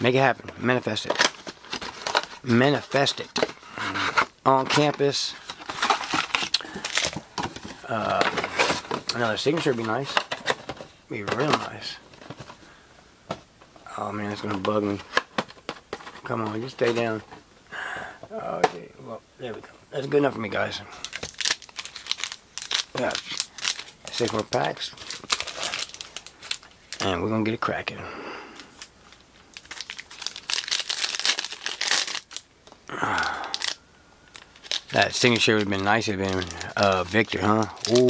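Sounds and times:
cards and wrappers crinkling: 0.1s - 12.8s, 13.8s - 17.4s, 18.5s - 27.8s, 28.4s - 38.0s.

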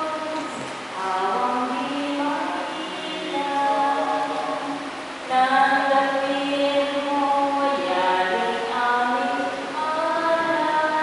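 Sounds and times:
group singing a hymn: 5.3s - 11.0s.

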